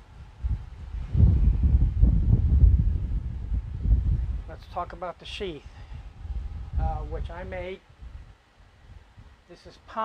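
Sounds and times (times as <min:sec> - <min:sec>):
microphone handling rumble: 0:00.0 - 0:05.0, 0:05.7 - 0:08.4.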